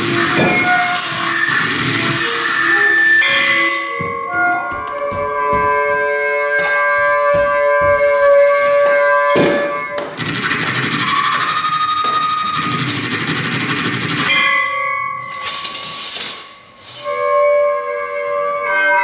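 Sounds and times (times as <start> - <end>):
percussive knocks: 7.2 - 8.3.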